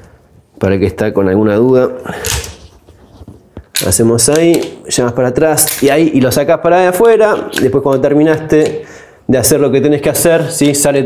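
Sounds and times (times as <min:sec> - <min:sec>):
sharp metal click: 0:05.6 - 0:06.0.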